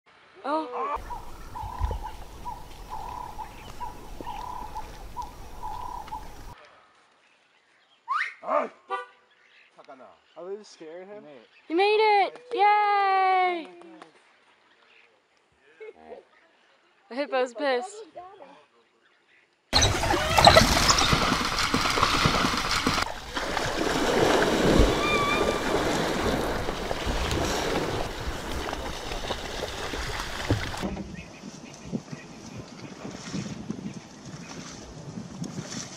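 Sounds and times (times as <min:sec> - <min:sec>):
water splashing and churning: 0:01.0 - 0:06.6, 0:19.8 - 0:35.9
wild dogs twittering: 0:01.0 - 0:06.6, 0:19.8 - 0:23.2, 0:24.7 - 0:28.0.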